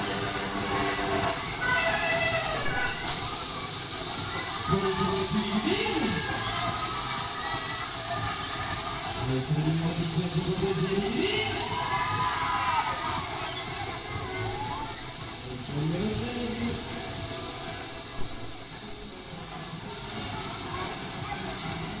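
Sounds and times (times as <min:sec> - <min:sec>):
continuous hiss: 0:00.0 - 0:22.0
high-pitched machinery whine: 0:00.0 - 0:22.0.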